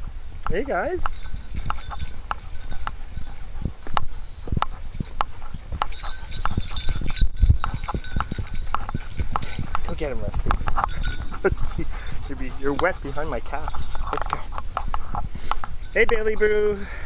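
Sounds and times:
footsteps on wooden boardwalk: 0.0s - 16.5s.

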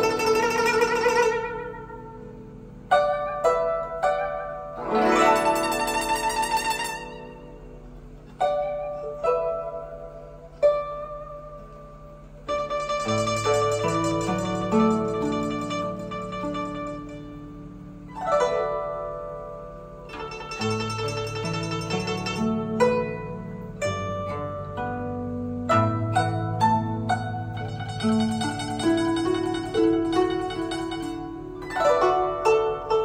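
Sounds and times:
plucked zither playing: 0.0s - 33.0s.

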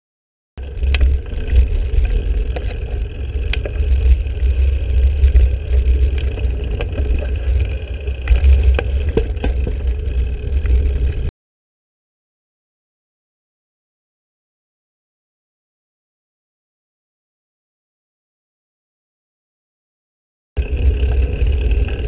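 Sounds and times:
bicycle clicks and rattles: 0.6s - 11.3s, 20.6s - 22.0s.

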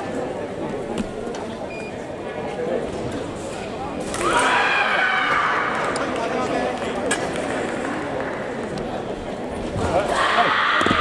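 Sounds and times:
voices and chatter: 0.0s - 11.0s.

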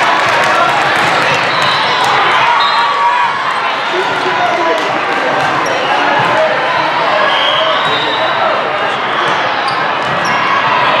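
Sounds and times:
many overlapping voices talking: 0.0s - 11.0s
volleyballs bouncing on court floor: 0.2s - 2.4s, 4.7s - 6.4s.

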